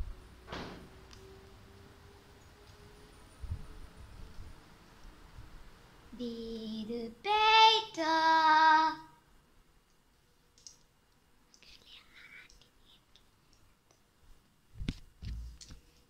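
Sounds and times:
child singing: 6.2s - 9.2s.

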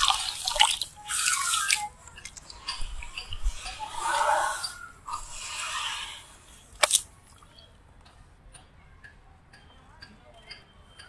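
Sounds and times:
fingers dabbling in water: 0.0s - 3.4s, 6.7s - 7.5s.

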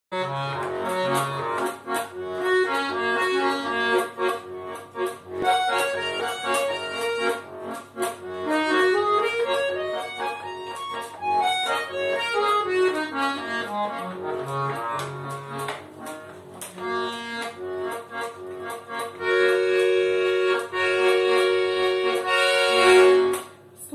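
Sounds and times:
button accordion folk melody: 0.1s - 23.6s.

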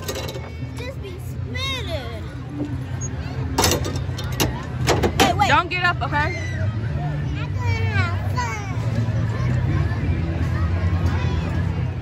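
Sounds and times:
fairground ride rumbling: 0.0s - 12.0s.

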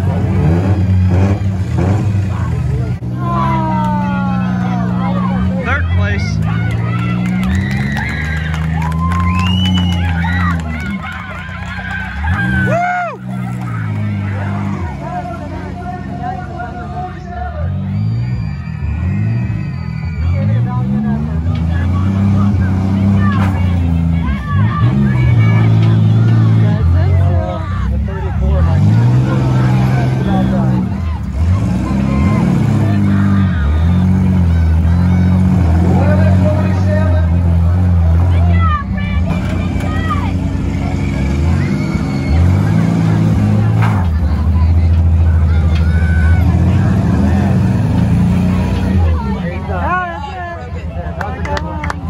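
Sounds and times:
car engines revving hard: 0.0s - 52.0s
spectators' voices: 0.0s - 52.0s.

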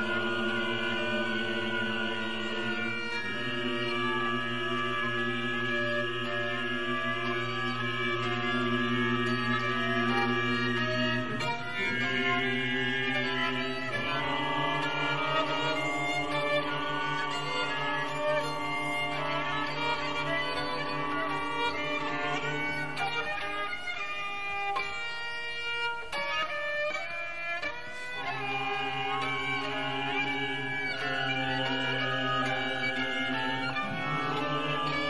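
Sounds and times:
violin and chamber ensemble: 0.0s - 35.0s.

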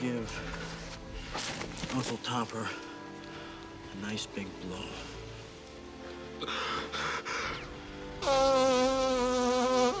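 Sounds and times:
man blowing nose loudly: 8.2s - 10.0s.

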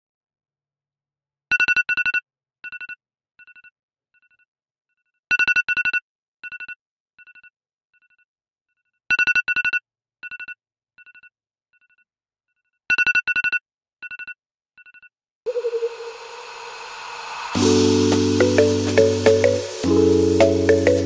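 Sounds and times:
phone alarm beeping: 15.5s - 16.8s.

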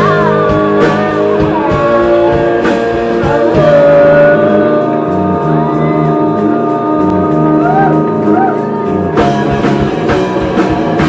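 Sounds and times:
woman singing: 0.0s - 9.2s
live rock band playing: 0.0s - 11.0s.

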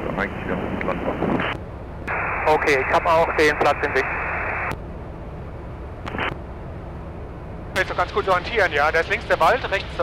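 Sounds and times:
aircraft engine and propeller drone: 0.0s - 10.0s.

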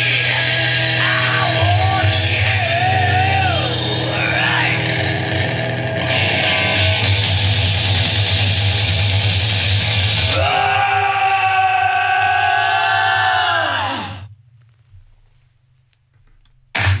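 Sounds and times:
man singing a high held note: 0.0s - 5.1s
heavy metal song: 0.0s - 14.2s.

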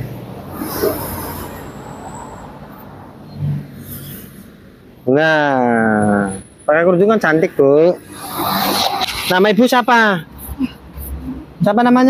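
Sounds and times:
steady rushing noise: 6.8s - 12.0s.

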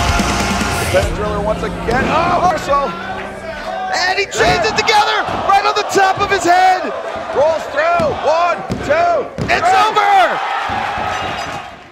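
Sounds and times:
crowd shouting: 1.8s - 11.9s.

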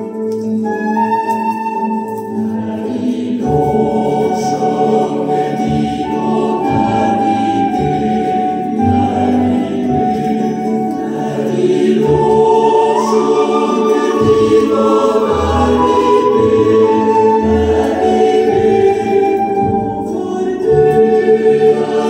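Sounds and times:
choir singing through loudspeaker: 2.4s - 22.0s.

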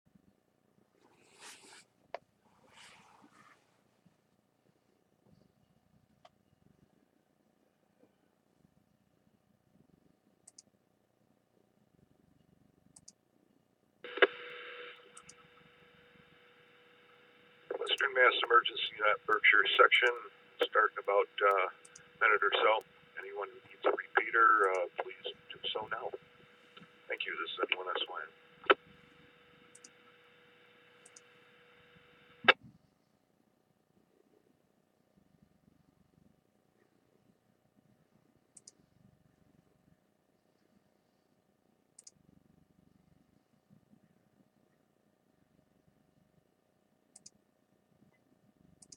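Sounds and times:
faint tiny ticks: 10.4s - 10.7s, 42.0s - 42.2s
squelch click: 10.4s - 10.7s, 12.9s - 13.2s, 15.0s - 15.5s, 31.0s - 31.3s, 38.6s - 38.8s, 42.0s - 42.2s, 47.1s - 47.4s
radio squelch click: 14.1s - 16.4s, 17.0s - 30.2s
radio hiss: 14.1s - 32.6s
steady carrier hum: 14.1s - 32.6s.

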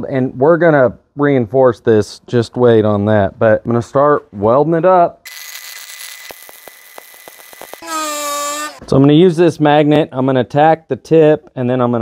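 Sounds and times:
small electric motor buzzing: 5.3s - 8.8s.

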